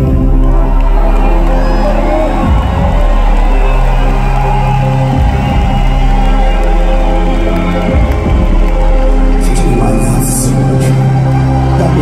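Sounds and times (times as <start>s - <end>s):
crowd cheering: 0.0s - 12.0s
live instrumental music over pa: 0.0s - 12.0s.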